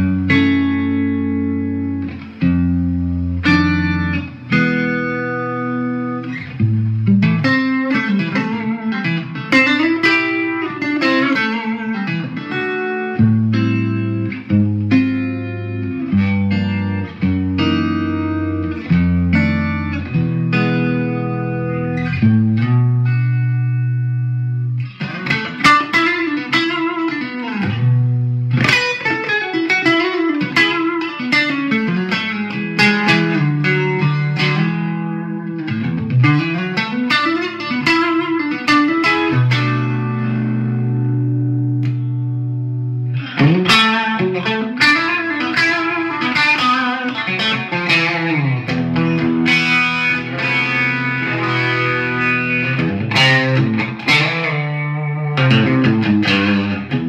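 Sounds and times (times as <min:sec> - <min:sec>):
overdriven electric guitar lead: 0:00.0 - 0:57.0.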